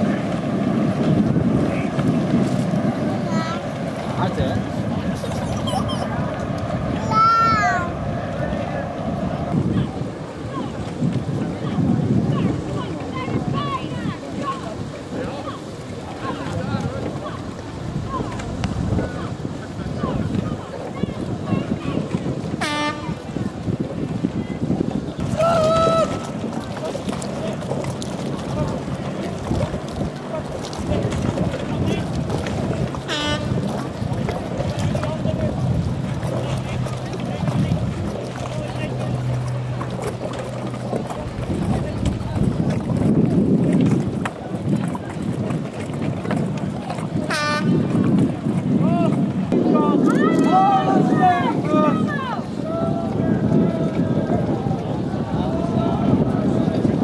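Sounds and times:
wind on microphone: 0.0s - 57.0s
distant voices shouting: 25.2s - 27.5s, 48.8s - 57.0s.

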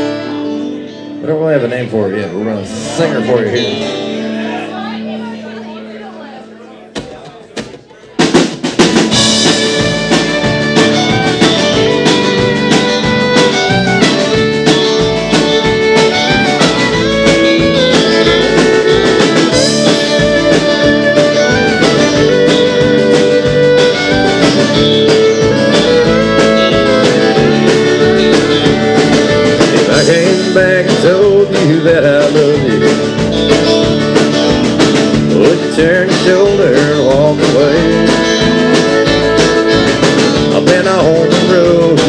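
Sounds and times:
electric lead guitar: 0.0s - 6.8s, 7.8s - 42.0s
bass guitar: 0.0s - 42.0s
strummed acoustic guitar: 0.0s - 42.0s
steady drum beat: 6.9s - 42.0s.

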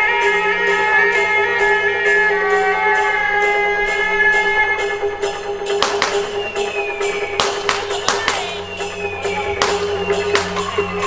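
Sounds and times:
sharp percussive strikes: 5.6s - 8.7s, 9.6s - 10.8s.

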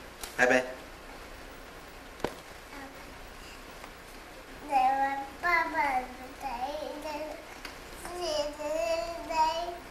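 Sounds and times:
toddler sing-song voice: 4.6s - 9.9s.

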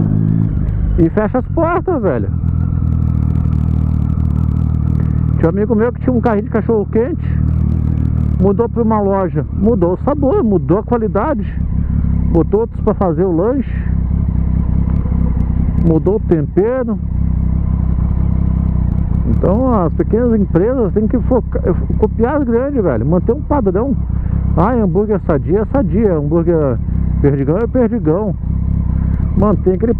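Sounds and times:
motorcycle engine running: 0.0s - 29.9s.

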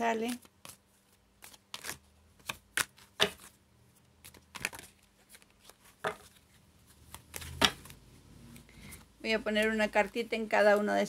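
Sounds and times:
cards being shuffled: 0.2s - 3.6s, 4.2s - 8.0s.

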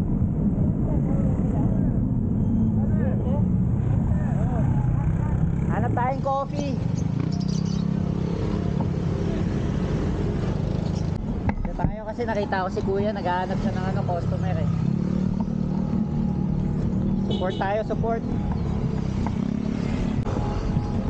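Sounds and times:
road traffic rumble: 0.0s - 21.0s.

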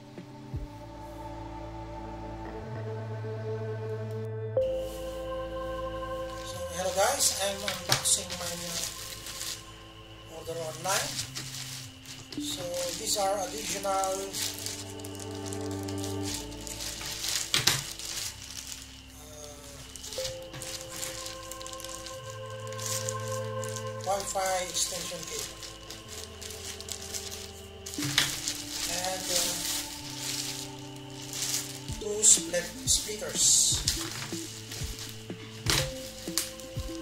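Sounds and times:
ambient synth music: 0.0s - 37.0s
plastic bag rustling: 6.1s - 37.0s.

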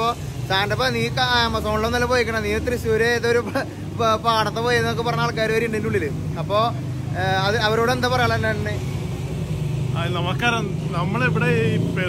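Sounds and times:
man talking: 0.0s - 9.0s, 9.9s - 12.0s
street traffic hum: 0.0s - 12.0s.

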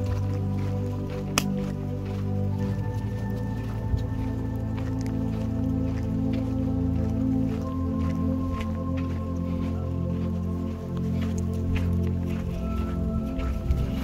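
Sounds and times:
slow layered tones over drone: 0.0s - 14.0s.

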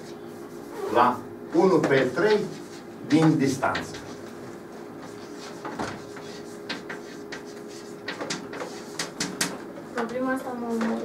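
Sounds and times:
chalk tapping and scratching: 1.6s - 11.0s.

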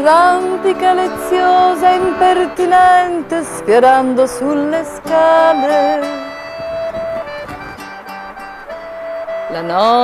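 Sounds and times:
accordion holding notes: 0.0s - 10.0s
plucked acoustic guitar: 0.0s - 10.0s.

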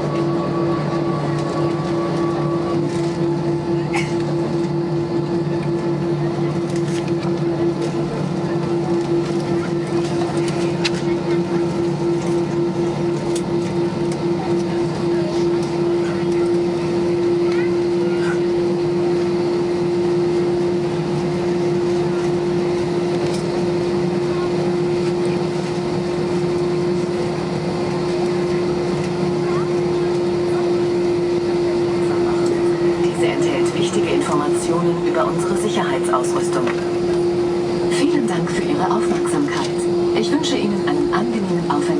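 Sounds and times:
jet engines idling drone: 0.0s - 41.9s.

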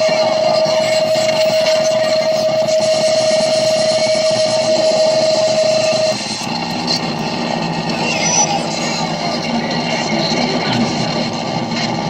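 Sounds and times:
distorted noise music: 0.0s - 12.0s
steady held tone: 0.0s - 12.0s.

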